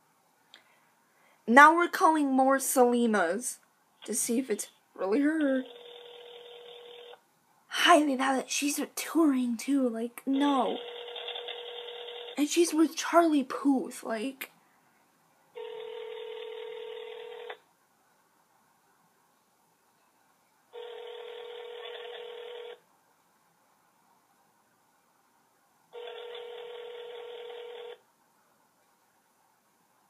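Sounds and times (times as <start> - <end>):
telephone ringback tone: 5.6 - 7.2, 10.4 - 12.4, 15.6 - 17.6, 20.8 - 22.8, 26.0 - 28.0.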